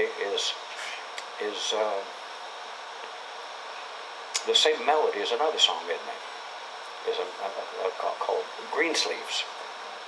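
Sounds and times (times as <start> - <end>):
room noise hiss: 0.0 - 10.0.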